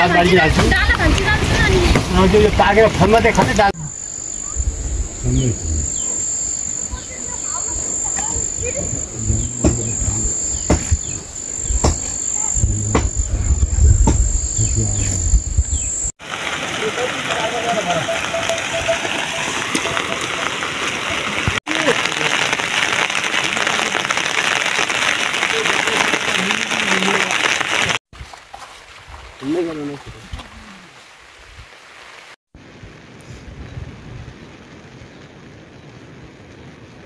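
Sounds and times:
falling rain hiss: 0.0s - 28.0s, 29.3s - 37.0s
high insect trill: 3.8s - 16.1s
low wind rumble: 3.8s - 16.1s.

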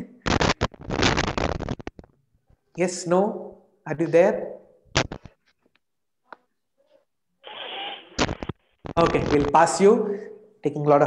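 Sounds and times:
muffled crackly microphone noise: 7.5s - 9.8s.

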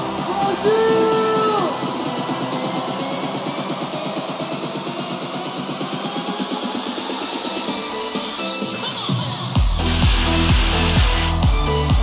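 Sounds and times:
fast even drum beat: 9.6s - 12.0s.

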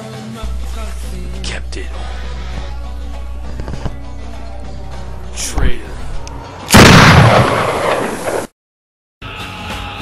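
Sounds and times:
loud gunshot-like boom: 6.7s - 8.5s.

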